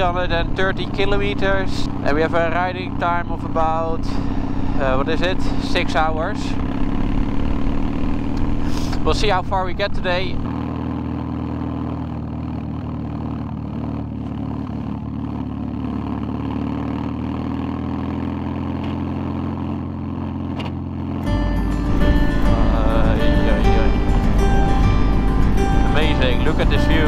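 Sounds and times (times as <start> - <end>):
motorcycle engine cruising: 0.0 - 27.0
background music: 21.2 - 27.0.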